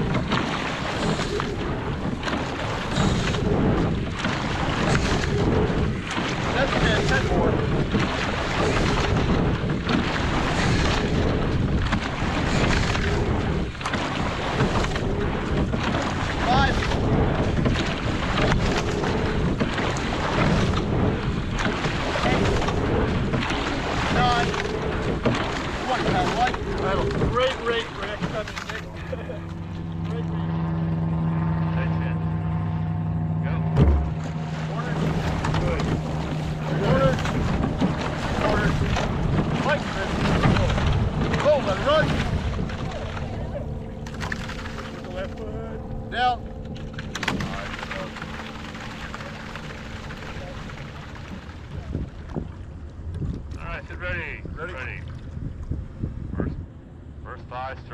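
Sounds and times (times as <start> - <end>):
wind on microphone: 0.0 - 57.3
steady low hum: 0.0 - 57.9
water rushing past a boat: 0.0 - 57.9
sharp thump: 33.6 - 34.5.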